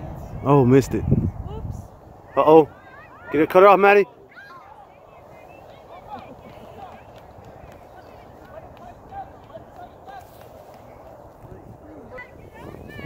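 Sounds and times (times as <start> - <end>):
distant voices calling: 1.9 - 13.0.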